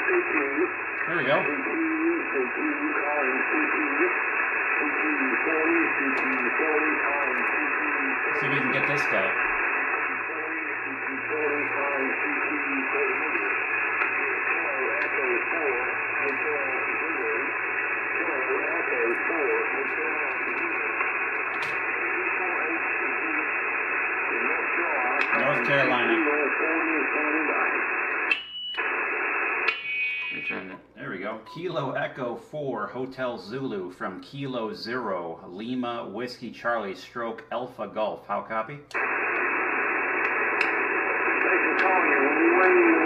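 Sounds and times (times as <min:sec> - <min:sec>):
radio band noise hiss: 0:00.0 - 0:43.0
radio voice: 0:00.0 - 0:43.0.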